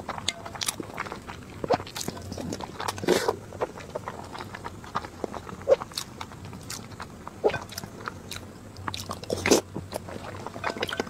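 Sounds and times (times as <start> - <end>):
person chewing: 0.0 - 11.0.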